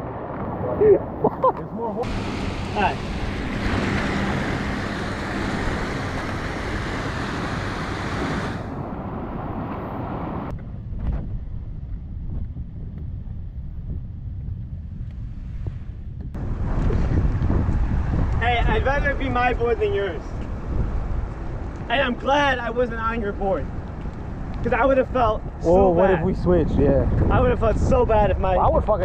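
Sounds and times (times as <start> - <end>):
wind buffeting microphone: 0.0 - 29.0
waves washing against concrete: 1.8 - 8.8.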